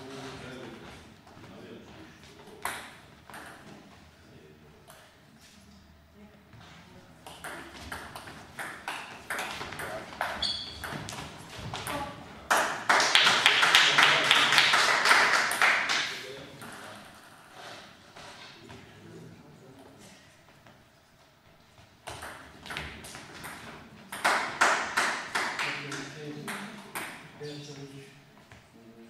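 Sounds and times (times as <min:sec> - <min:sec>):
loud dense clapping: 0:12.5 - 0:16.3, 0:24.2 - 0:26.1.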